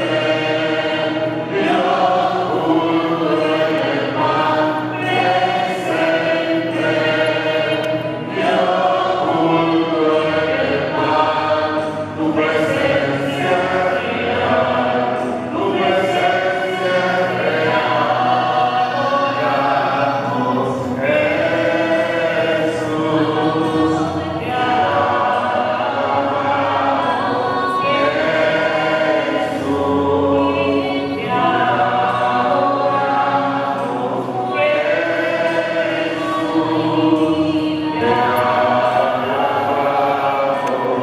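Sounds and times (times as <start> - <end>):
congregation singing: 0.0 - 41.0.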